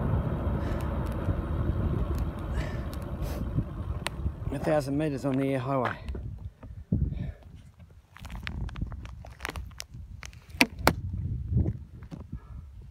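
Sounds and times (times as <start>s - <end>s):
wind buffeting microphone: 0.0s - 12.9s.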